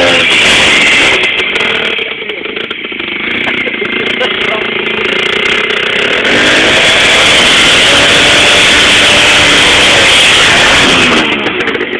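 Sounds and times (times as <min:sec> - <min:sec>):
small motorcycle engine revving: 0:00.0 - 0:11.9.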